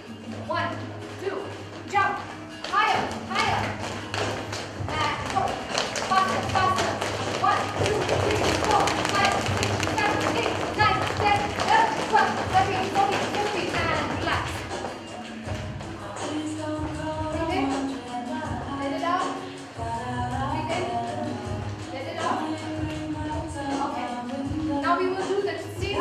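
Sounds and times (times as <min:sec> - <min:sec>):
dance music with vocals: 0:00.0 - 0:26.0
feet tapping on tiled floor: 0:01.1 - 0:16.0.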